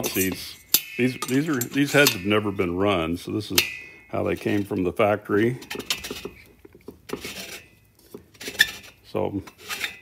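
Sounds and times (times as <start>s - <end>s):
metallic clicks and scrapes: 0.0s - 2.6s, 3.5s - 10.0s.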